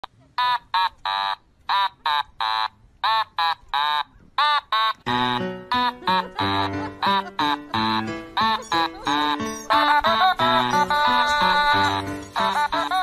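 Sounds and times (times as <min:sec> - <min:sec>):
background music: 0:05.1 - 0:13.0.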